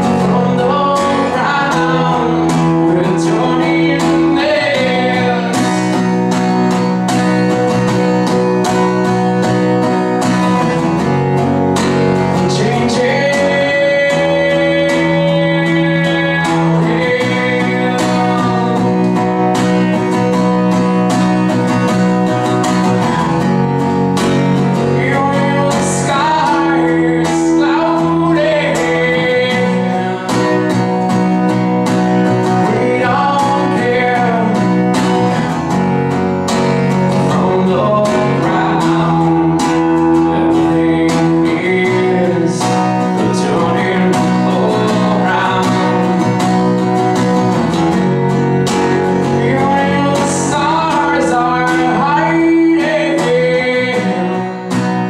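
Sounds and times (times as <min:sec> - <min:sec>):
acoustic guitar strumming: 0:00.0 - 0:55.0
man singing: 0:00.0 - 0:55.0.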